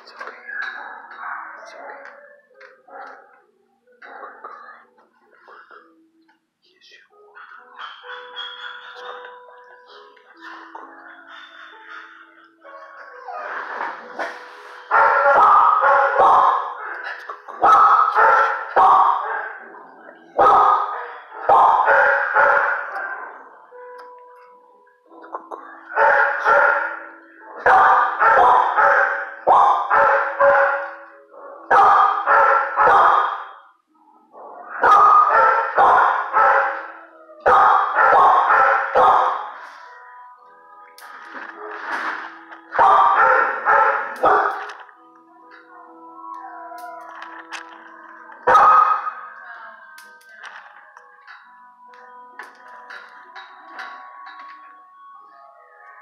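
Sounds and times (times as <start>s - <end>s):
dogs barking: 0.0s - 4.7s, 7.3s - 23.8s, 25.1s - 40.5s, 41.3s - 45.0s, 46.7s - 49.4s.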